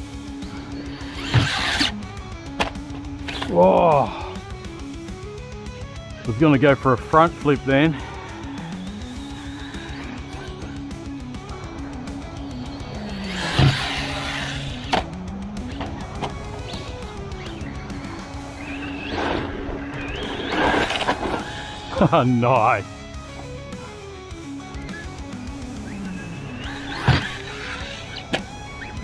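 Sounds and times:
rc truck motor revving: 0.0s - 4.9s, 7.5s - 22.2s, 23.2s - 29.0s
guitar music with bass line: 0.0s - 29.0s.

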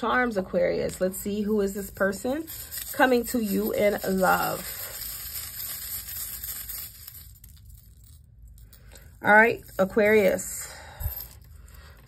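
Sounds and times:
charms rustling: 0.0s - 12.0s.

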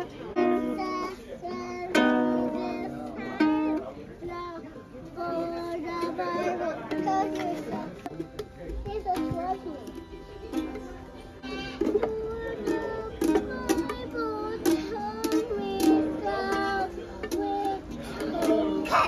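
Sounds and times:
child singing and talking: 0.0s - 19.0s
children strumming ukuleles: 0.0s - 19.0s.

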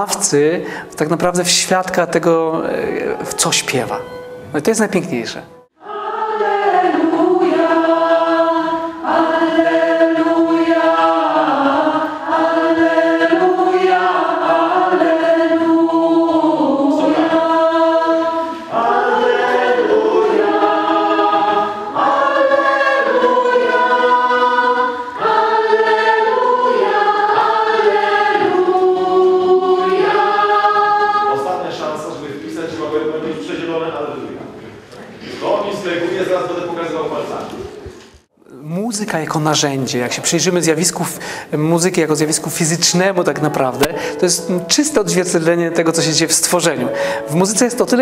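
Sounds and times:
mixed choir singing: 5.7s - 34.3s.

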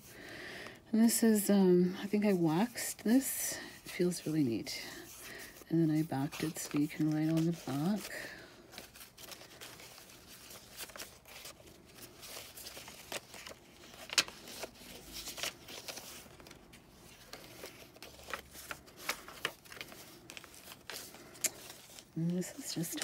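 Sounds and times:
paper pages rustling and crinkling: 3.6s - 23.0s.

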